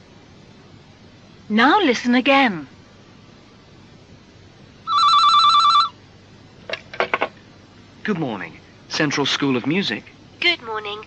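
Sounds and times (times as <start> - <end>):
telephone ringing: 4.8 - 6.0.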